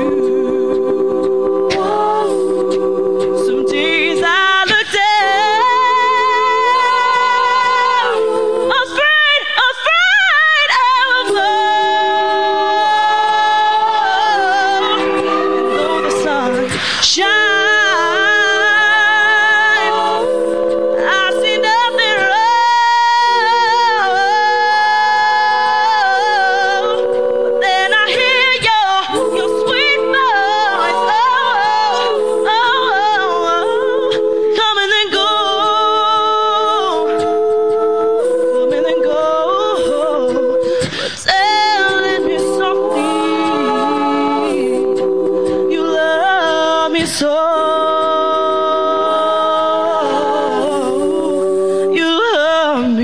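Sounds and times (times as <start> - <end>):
women singing a cappella: 0.0 - 53.0.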